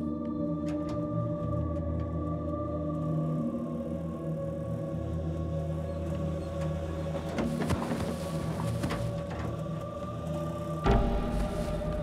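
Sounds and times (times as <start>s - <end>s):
tense droning film score: 0.0s - 12.0s.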